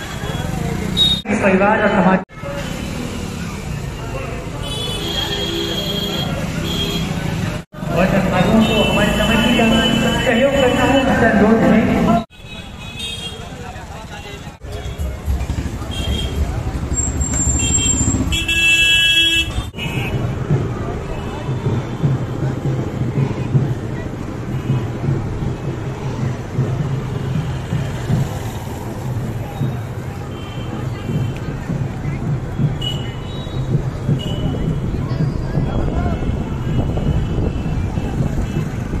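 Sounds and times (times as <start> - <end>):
street traffic rumble: 0.0 - 39.0
voices of people nearby: 2.3 - 18.3, 19.5 - 39.0
vehicle horn blast: 4.6 - 7.2, 8.6 - 11.0, 17.6 - 20.2.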